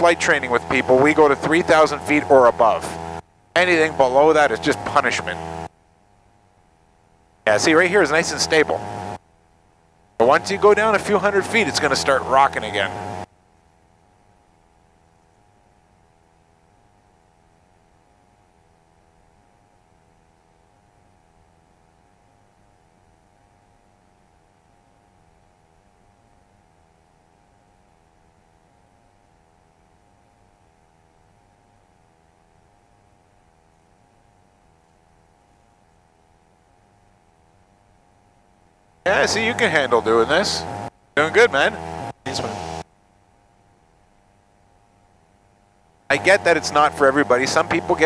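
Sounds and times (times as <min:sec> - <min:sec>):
intercom hiss and hum: 0:00.0 - 0:05.8, 0:06.7 - 0:09.2, 0:10.1 - 0:20.0, 0:39.0 - 0:42.9, 0:46.0 - 0:48.0
low pulsing drone: 0:00.0 - 0:36.6, 0:39.0 - 0:42.8, 0:46.1 - 0:48.0.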